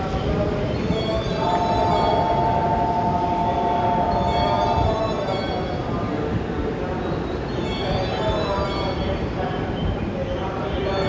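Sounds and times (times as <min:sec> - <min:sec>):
train horn two-tone blast: 0:01.5 - 0:04.9.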